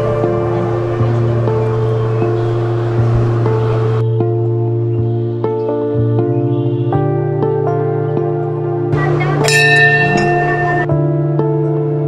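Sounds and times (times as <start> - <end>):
calm ambient music: 0.0 - 12.0
brass bell ringing: 9.4 - 11.0.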